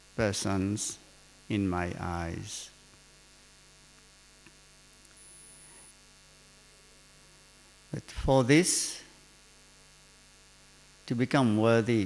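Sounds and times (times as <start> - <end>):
faint microphone hiss: 0.0 - 12.0
low mains hum: 0.0 - 12.0.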